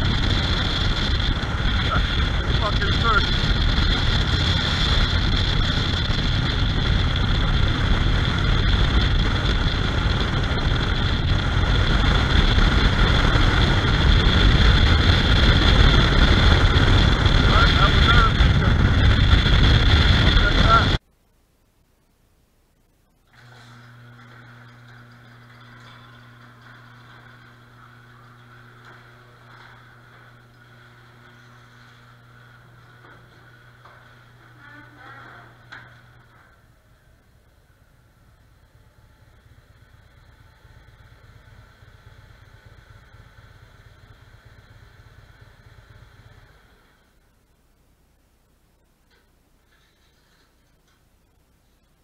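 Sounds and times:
garage door motor hum: 0.0s - 21.0s, 23.3s - 47.4s
motorcycle engine idling: 35.8s - 47.0s.

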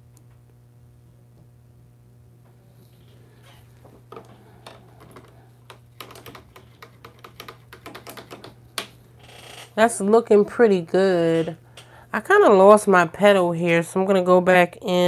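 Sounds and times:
clicks of brushes and paint bottles: 4.1s - 9.0s.

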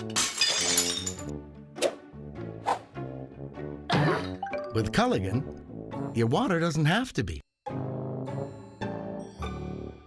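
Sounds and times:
plates crashing and shattering: 0.0s - 1.3s
background music: 0.0s - 10.0s.

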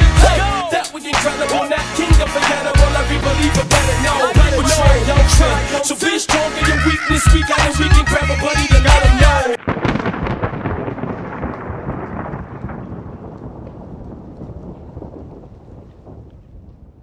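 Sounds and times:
hip hop music: 0.0s - 9.6s
rumbling crackling noise: 9.6s - 17.0s.

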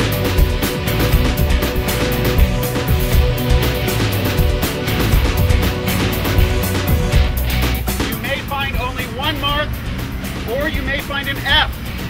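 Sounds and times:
people calling and talking: 0.0s - 12.0s.

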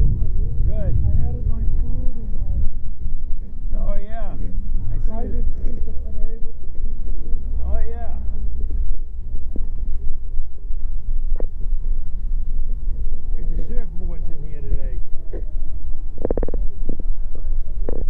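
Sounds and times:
people talking: 0.0s - 6.8s, 7.6s - 8.4s, 13.3s - 15.5s
loud low rumble: 0.0s - 18.0s.

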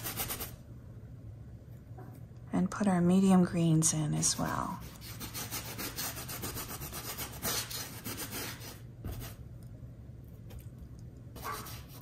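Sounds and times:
paintbrush scrubbing on canvas: 4.8s - 9.4s.

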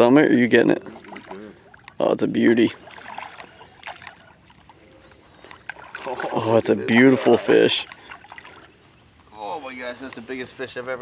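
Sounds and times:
water sloshing: 0.0s - 9.4s
fish splashing at water surface: 0.8s - 2.0s, 2.7s - 8.8s.

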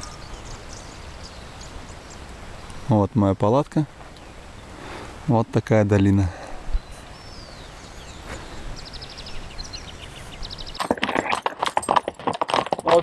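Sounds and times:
horse hooves clopping on stony track: 10.7s - 13.0s.

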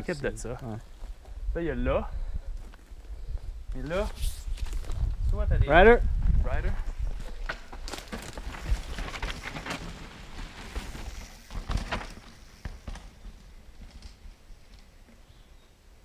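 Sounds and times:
footsteps on gritty dirt trail: 0.6s - 1.5s, 2.4s - 5.3s, 6.1s - 14.2s.

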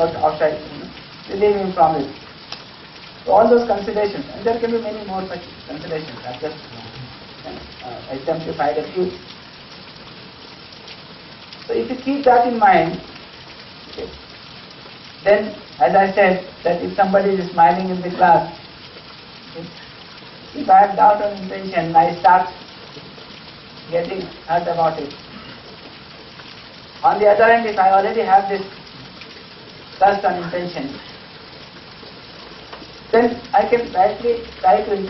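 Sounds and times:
man speaking: 0.0s - 2.1s, 3.3s - 9.2s, 15.3s - 18.6s, 20.6s - 22.6s, 23.9s - 25.1s, 27.0s - 28.7s, 30.0s - 31.1s, 33.2s - 35.0s
room noise hiss: 0.0s - 35.0s.

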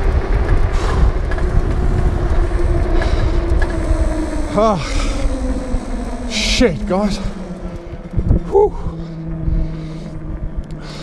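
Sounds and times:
electric motor whine: 0.0s - 11.0s
wind rushing over microphone: 0.0s - 11.0s.

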